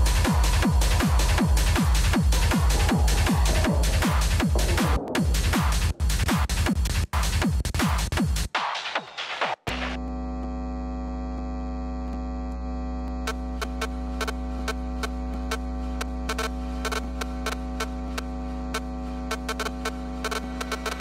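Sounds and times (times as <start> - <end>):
electronic drone: 0.0 - 5.9, 10.0 - 21.0
sharp clicking ticks: 13.3 - 21.0.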